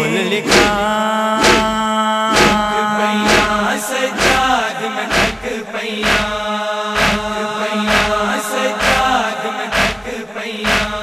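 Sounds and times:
man chanting a lament: 0.0s - 11.0s
chest-beating strikes: 0.5s - 4.5s, 7.0s - 8.2s.

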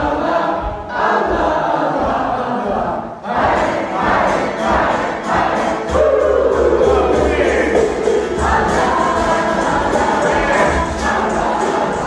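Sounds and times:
group singing a devotional chant: 0.0s - 12.0s.

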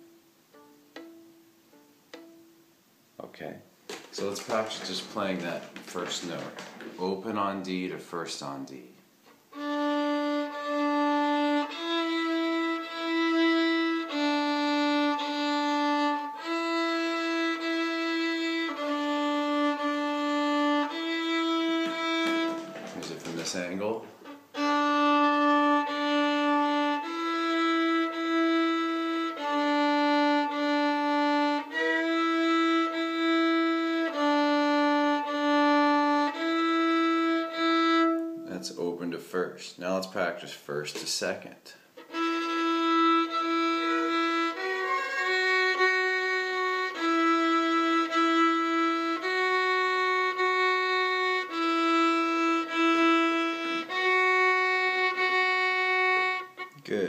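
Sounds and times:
fiddle bowed slowly: 0.0s - 2.5s, 9.5s - 38.9s, 42.0s - 57.0s
person speaking: 3.2s - 9.0s, 21.8s - 24.4s, 38.4s - 41.9s, 43.8s - 45.9s, 56.6s - 57.0s.

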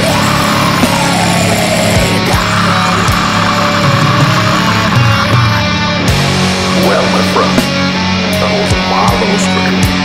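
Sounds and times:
loud distorted guitars: 0.0s - 10.0s.

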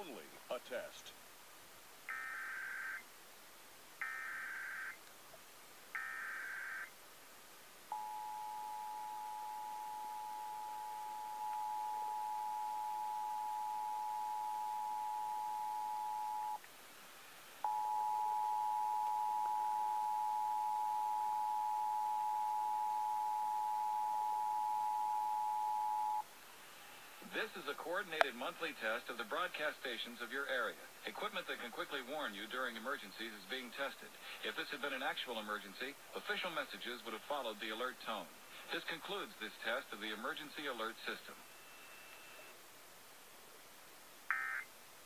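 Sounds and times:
data tone bursts: 7.9s - 16.6s, 17.6s - 26.2s, 41.4s - 42.6s
two-tone attention signal: 7.9s - 16.6s.

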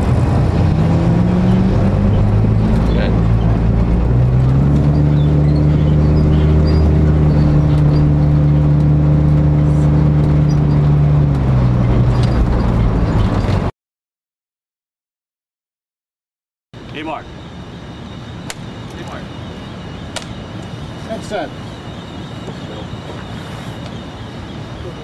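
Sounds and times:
car engine running: 0.0s - 13.7s.

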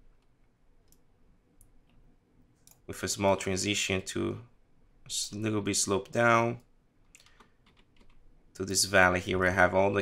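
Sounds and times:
man speaking: 2.9s - 4.5s, 5.1s - 6.6s, 8.6s - 10.0s.

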